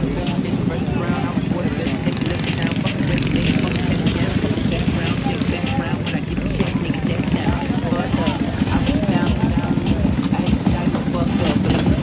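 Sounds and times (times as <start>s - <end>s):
people talking faintly: 0.0s - 12.0s
small engines idling: 0.0s - 12.0s.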